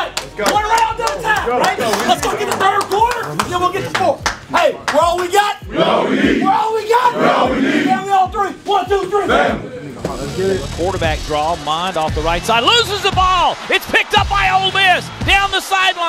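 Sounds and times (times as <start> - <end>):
sharp claps and slaps: 0.0 - 5.1
team yelling together: 5.3 - 8.3, 9.1 - 9.6.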